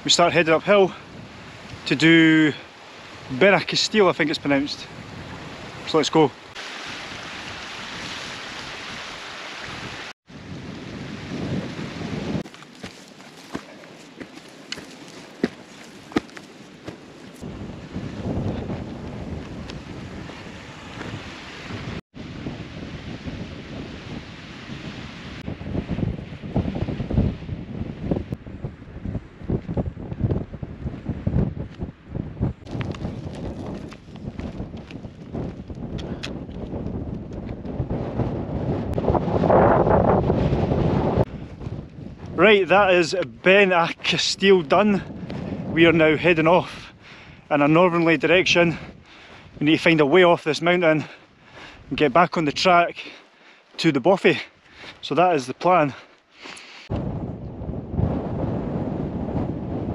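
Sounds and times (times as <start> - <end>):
wind buffeting microphone: 0.0 - 50.0, 56.9 - 59.9.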